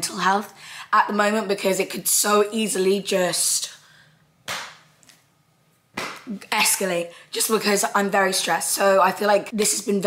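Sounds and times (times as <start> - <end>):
sharp hand slap: 4.4 - 4.9, 6.0 - 6.3.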